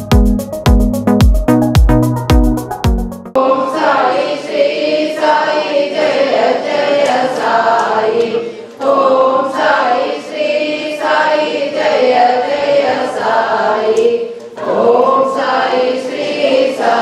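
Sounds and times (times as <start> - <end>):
sharp beat keeping time: 0.0 - 3.4
group singing a hymn: 3.4 - 17.0.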